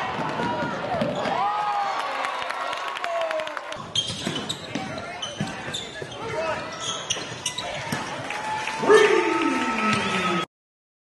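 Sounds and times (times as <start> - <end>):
sneakers squeaking: 3.8 - 8.2.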